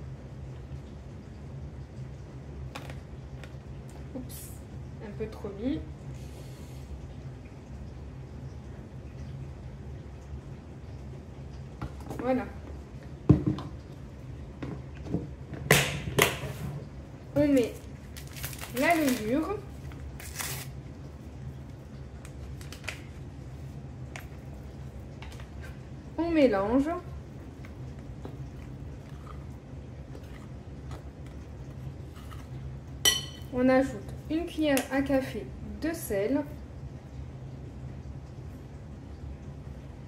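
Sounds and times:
low steady hum: 0:00.0 - 0:40.0
woman speaking: 0:04.1 - 0:05.9, 0:12.1 - 0:12.6, 0:17.3 - 0:17.8, 0:18.7 - 0:19.7, 0:26.2 - 0:27.1, 0:33.5 - 0:36.6.

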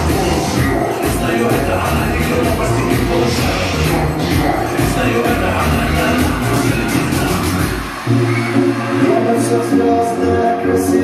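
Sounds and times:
loud dance music over loudspeakers: 0:00.0 - 0:11.0.

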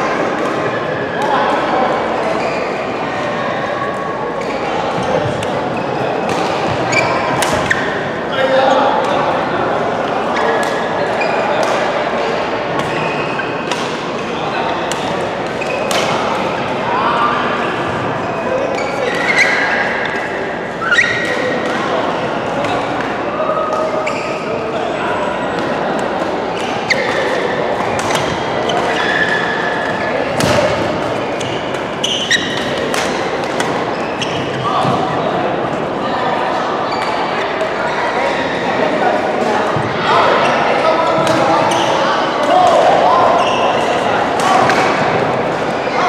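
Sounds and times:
chatter of voices: 0:00.0 - 0:46.0
rackets hitting shuttlecock: 0:06.2 - 0:08.0, 0:12.7 - 0:16.4, 0:25.6 - 0:35.0.

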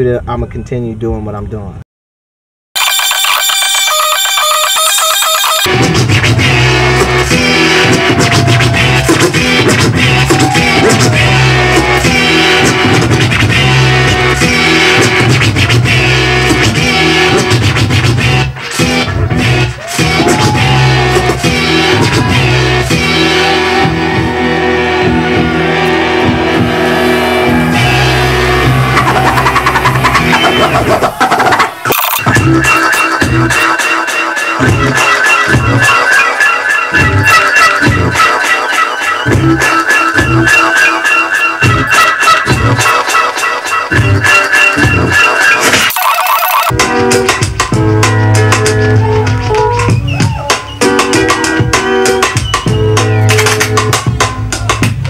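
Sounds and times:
record scratching stutters: 0:02.8 - 0:06.5, 0:28.8 - 0:33.9, 0:45.6 - 0:46.7
dj mix music with heavy bass: 0:05.6 - 0:55.0.

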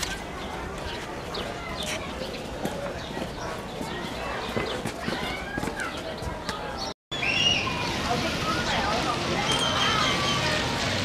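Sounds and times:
footsteps on hard path: 0:00.0 - 0:06.7
children chattering and calling: 0:00.0 - 0:11.0.

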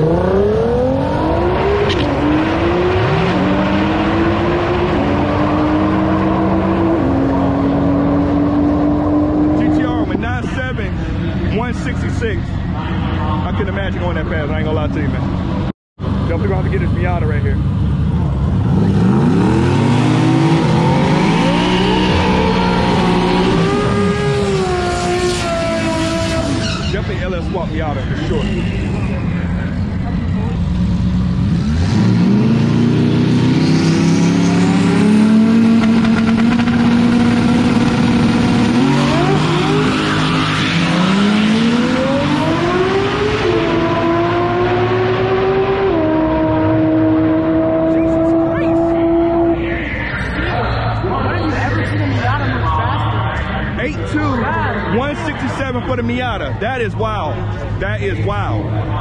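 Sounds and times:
race car engines revving: 0:00.0 - 0:59.0.

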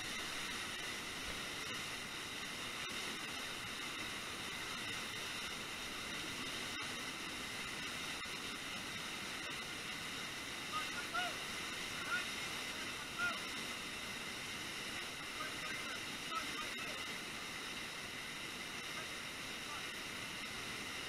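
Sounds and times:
waterfall rushing into pool: 0:00.0 - 0:21.0.

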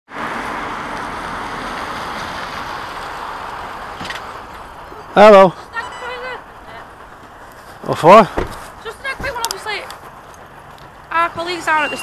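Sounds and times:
tyres hissing on tarmac: 0:00.1 - 0:12.0.

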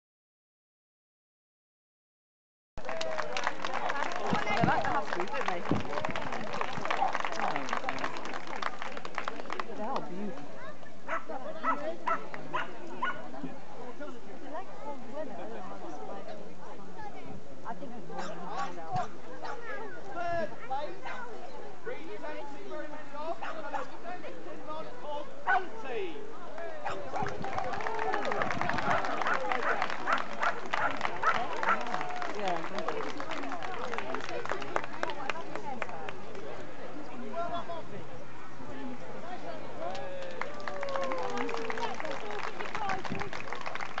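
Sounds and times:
crowd talking: 0:02.8 - 0:44.0
dog barking: 0:11.1 - 0:13.2.

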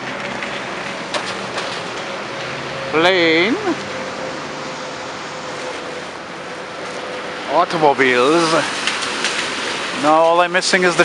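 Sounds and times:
jet airliner roaring overhead: 0:00.0 - 0:10.0
street traffic: 0:00.0 - 0:11.0.

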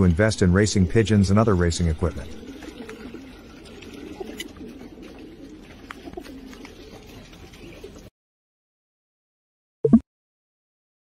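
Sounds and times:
pigeons cooing: 0:00.0 - 0:08.1.

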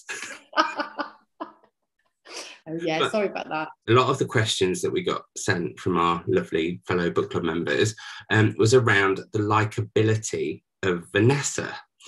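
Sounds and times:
person laughing: 0:00.0 - 0:01.6, 0:05.9 - 0:09.6.

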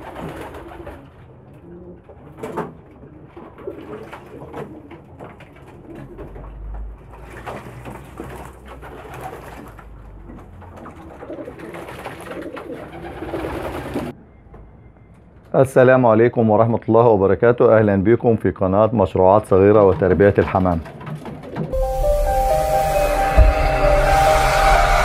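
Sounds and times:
pigeons cooing: 0:00.0 - 0:06.6, 0:10.8 - 0:14.1
water splashes: 0:03.4 - 0:14.1.

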